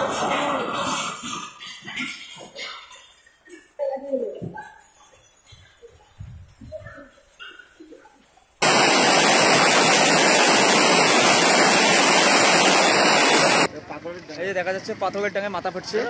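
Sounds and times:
heavy hail falling: 8.6 - 13.7.

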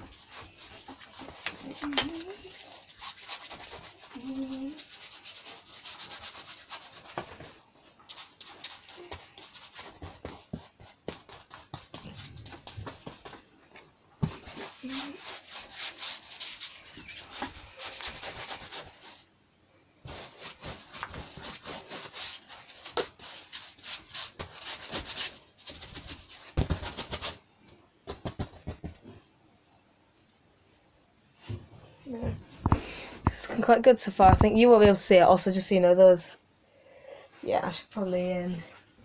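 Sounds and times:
paintbrush scrubbing on canvas: 0.0 - 13.4, 14.2 - 19.3, 20.0 - 27.4.

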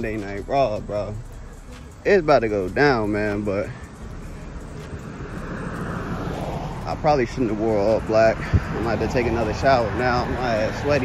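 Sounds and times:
vehicle passing: 0.0 - 11.0.

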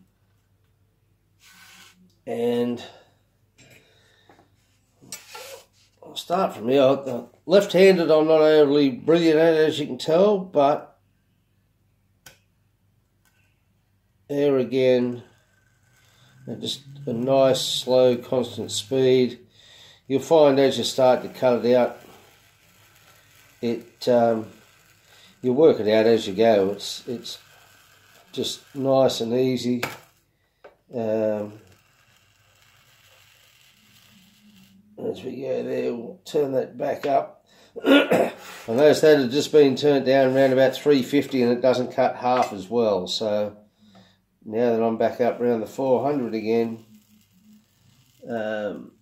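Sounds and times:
hot tool hissing through foam: 15.2 - 30.3, 31.2 - 34.8, 46.0 - 49.0.

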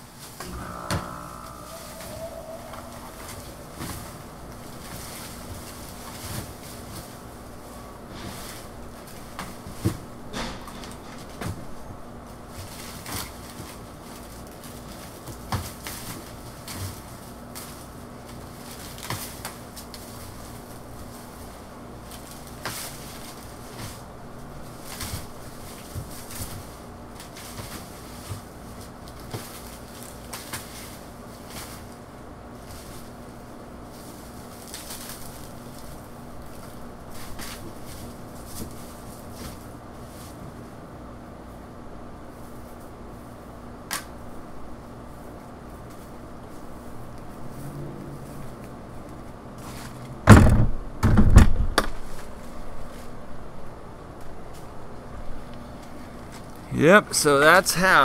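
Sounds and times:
plant stalks rustling in plastic bin: 12.5 - 40.4
loud thuds and knocks: 50.3 - 51.8.

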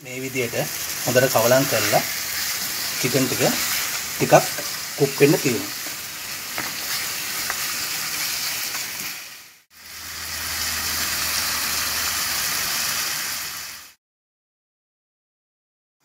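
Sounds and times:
food sizzling in hot oil: 0.0 - 14.0.

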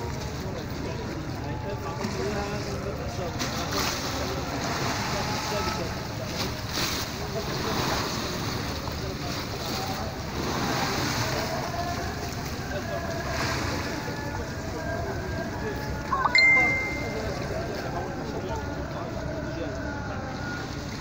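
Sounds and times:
sea water splashing against shore: 2.0 - 14.8.

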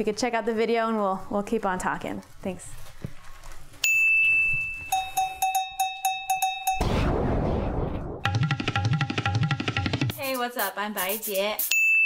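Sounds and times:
bright electronic ding: 3.8 - 7.1.

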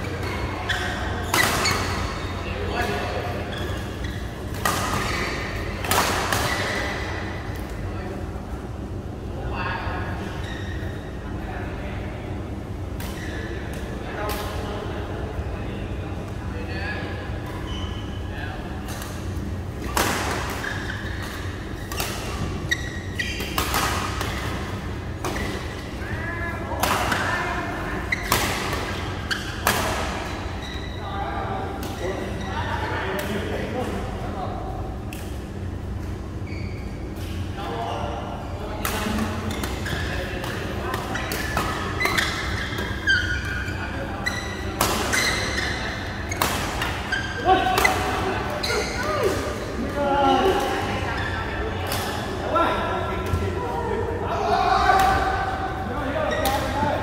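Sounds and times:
steady low hum: 0.0 - 57.0.

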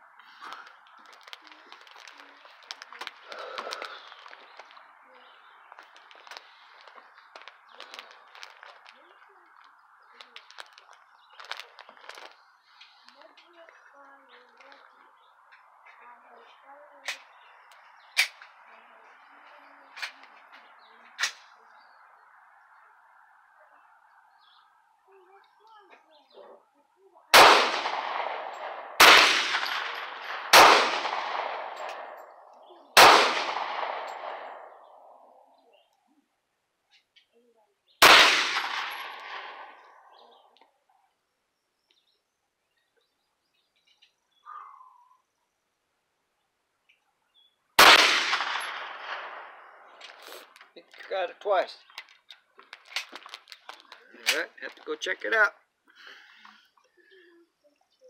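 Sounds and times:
echoing gunshots: 27.3 - 35.2, 38.0 - 40.1, 47.8 - 50.0.

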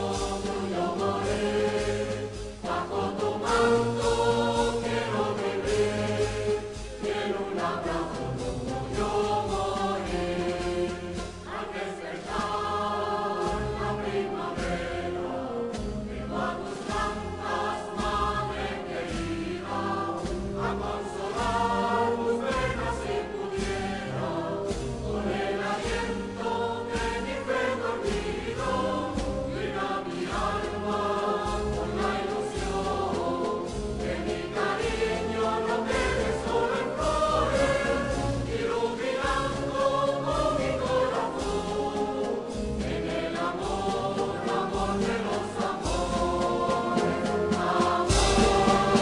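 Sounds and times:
slow low drum beat: 0.0 - 49.0
wind band playing a march: 0.0 - 49.0.

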